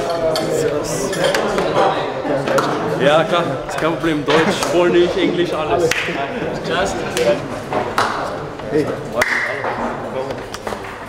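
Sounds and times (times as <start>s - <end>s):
voices talking: 0.0s - 10.8s.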